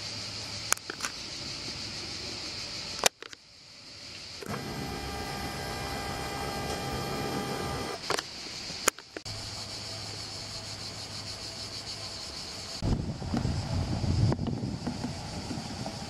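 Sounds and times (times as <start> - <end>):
faint high insect buzz: 0.0 - 16.0
camera zoom motor whining: 4.4 - 8.0
sharp clicks: 4.4 - 9.3.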